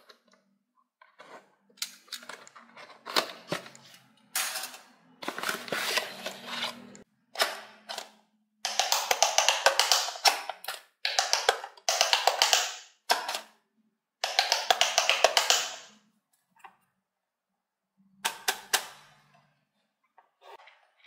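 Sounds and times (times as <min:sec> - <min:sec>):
cardboard and plastic handled: 0:05.2 - 0:06.9.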